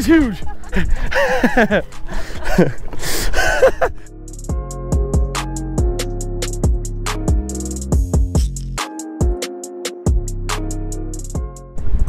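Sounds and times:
people laughing and squealing: 0.0s - 4.1s
music with drum beat: 4.3s - 11.6s.

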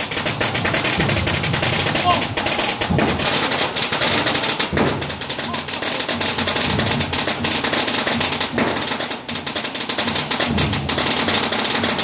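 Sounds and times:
firecrackers crackling: 0.0s - 12.0s.

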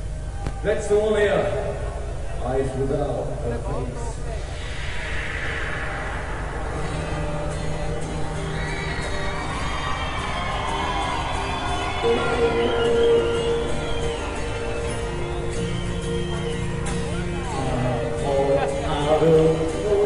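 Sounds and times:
crowd noise: 0.0s - 20.0s
acoustic guitar strumming: 6.8s - 20.0s.

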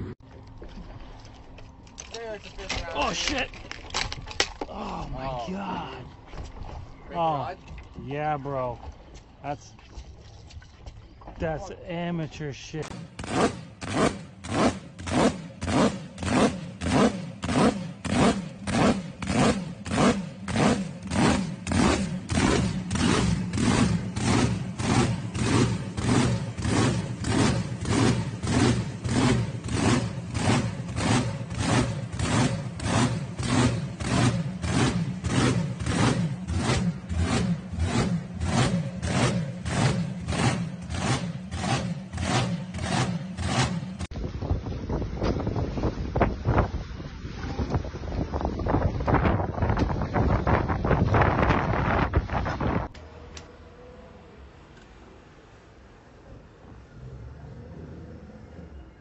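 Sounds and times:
boat engine idling with lope: 17.8s - 51.7s.

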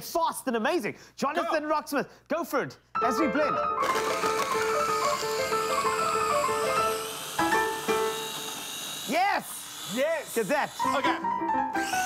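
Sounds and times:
fast piano playing: 3.0s - 8.4s, 10.8s - 12.0s
blender running: 3.8s - 12.0s.

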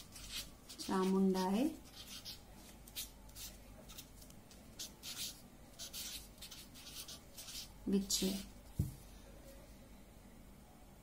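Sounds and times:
marker pen writing on paper: 0.0s - 8.5s.

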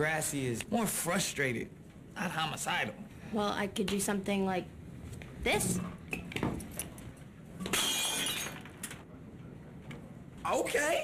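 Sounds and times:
glass pieces ringing: 7.7s - 8.7s
glass shattering crash: 7.7s - 8.7s.

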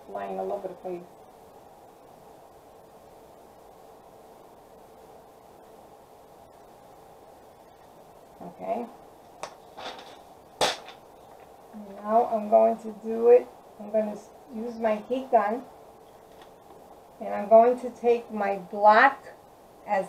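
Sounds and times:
faint room hum: 0.0s - 20.0s.

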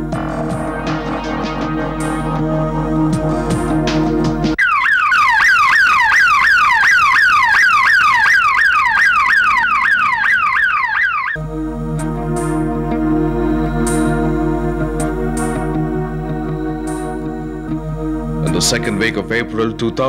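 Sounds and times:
background music: 0.0s - 4.6s, 11.4s - 20.0s
ambulance siren sweeping: 0.0s - 17.6s.

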